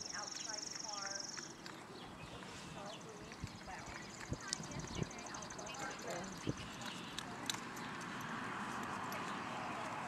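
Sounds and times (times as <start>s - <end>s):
hooves thudding on sand: 0.1s - 10.0s.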